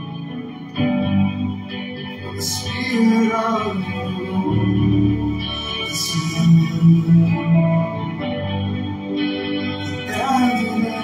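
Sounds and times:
worship band music: 0.0s - 11.0s.

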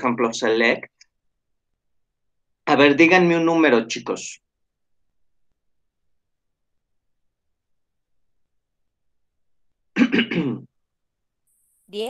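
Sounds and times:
man speaking: 0.0s - 1.0s
man clearing throat: 9.9s - 10.7s.

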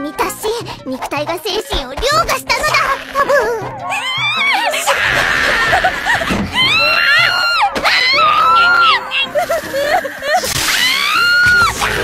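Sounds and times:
background music: 0.0s - 12.0s
girl screaming: 2.7s - 9.4s, 10.5s - 11.8s.

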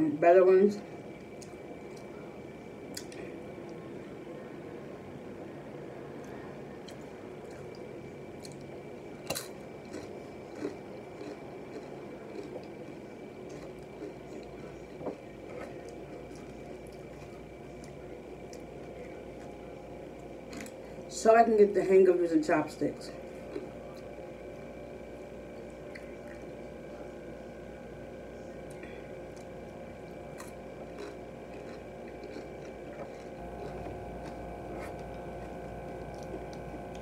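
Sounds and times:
wet chewing: 6.2s - 21.0s, 23.3s - 24.7s, 25.6s - 26.6s, 30.1s - 37.0s.

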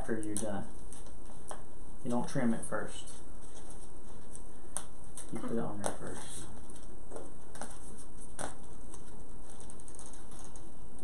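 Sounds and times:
paper and stickers peeled: 7.6s - 10.8s.

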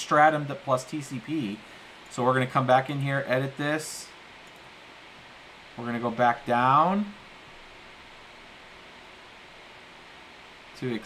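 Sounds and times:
faint background hiss: 0.0s - 11.0s.

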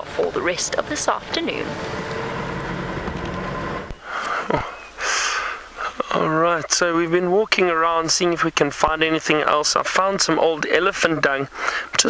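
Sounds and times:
vehicle engine running: 0.0s - 4.2s.

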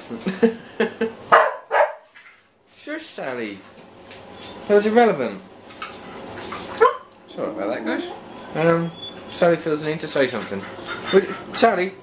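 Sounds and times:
dog barking: 1.3s - 2.1s, 6.8s - 7.1s.

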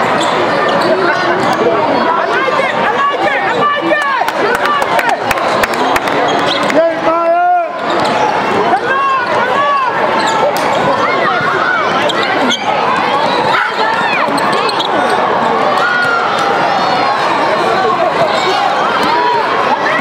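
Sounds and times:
voices of players and spectators: 0.0s - 20.0s
sneakers squeaking on hardwood: 5.4s - 6.7s, 12.0s - 15.2s.

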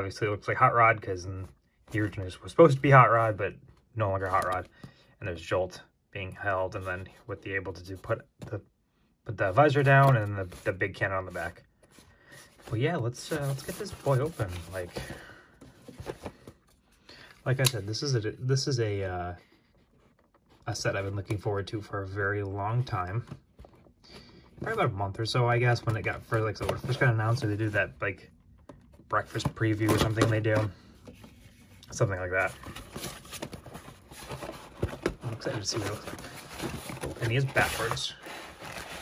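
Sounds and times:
cardboard box rubbing rustle: 32.5s - 39.0s.

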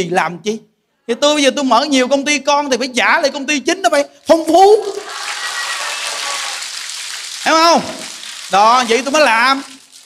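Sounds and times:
audience noise hiss-like wash: 4.8s - 9.8s.

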